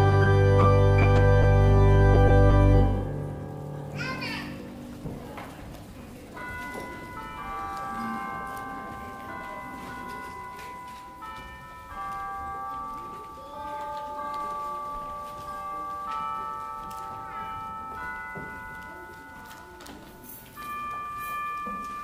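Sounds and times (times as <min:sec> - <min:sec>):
slow instrumental music: 0:00.0 - 0:05.0
faint room murmur: 0:03.3 - 0:22.0.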